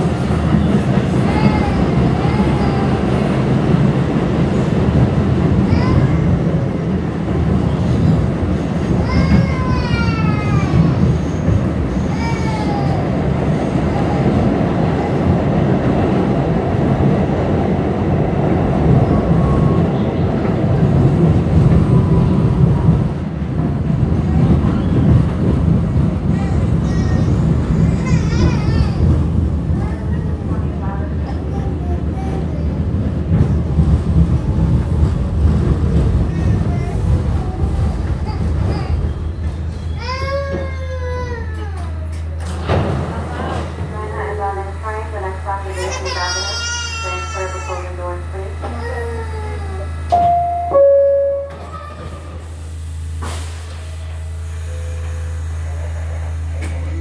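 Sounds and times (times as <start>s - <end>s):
subway train rumbling in tunnel: 0.0s - 57.0s.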